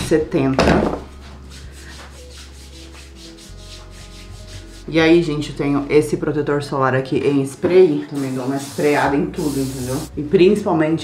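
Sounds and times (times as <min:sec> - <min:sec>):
hands rubbing lotion on skin: 0:01.1 - 0:04.9.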